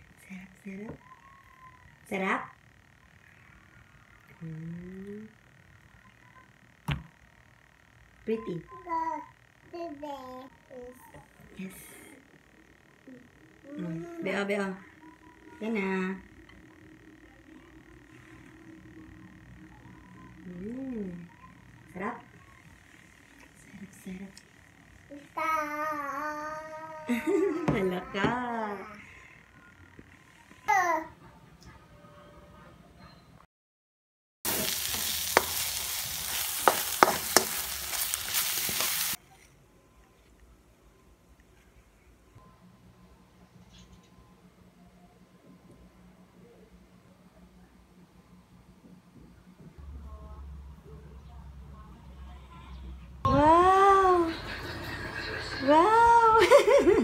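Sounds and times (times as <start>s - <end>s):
food sizzling in a pan: 34.5s - 39.2s.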